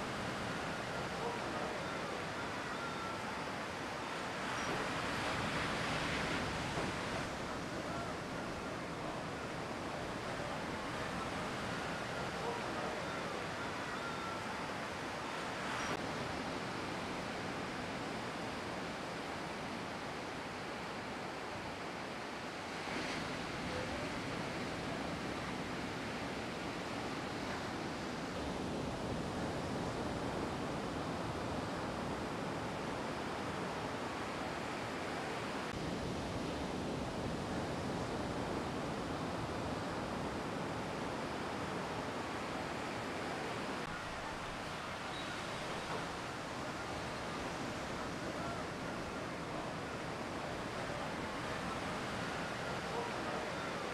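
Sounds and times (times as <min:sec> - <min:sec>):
ocean surf breaking: 0:00.0 - 0:53.9.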